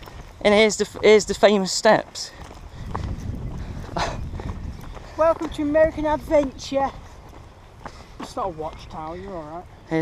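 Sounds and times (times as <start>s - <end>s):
footsteps on muddy dirt path: 0.0s - 10.0s.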